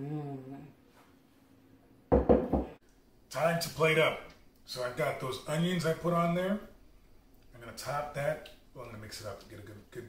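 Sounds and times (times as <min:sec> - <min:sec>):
loud knocks on hard surface: 0:02.1 - 0:02.8.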